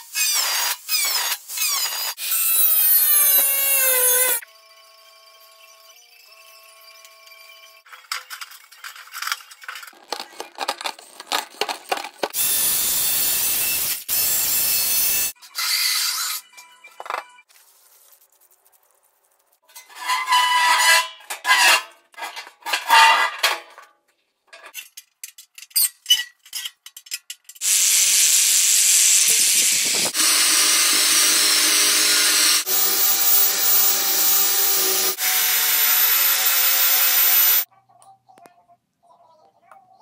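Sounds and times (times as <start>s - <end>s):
rasping bursts of metalwork: 0.0s - 4.4s, 12.3s - 16.4s
angle grinder cutting steel: 0.0s - 4.5s, 12.3s - 16.4s, 27.6s - 37.7s.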